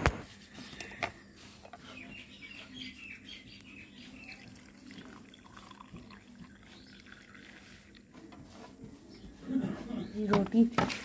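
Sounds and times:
faint birds chirping: 0.0 - 11.0.

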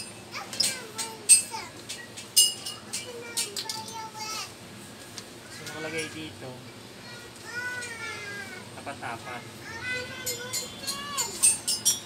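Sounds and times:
metal hardware clinking: 10.2 - 12.0.

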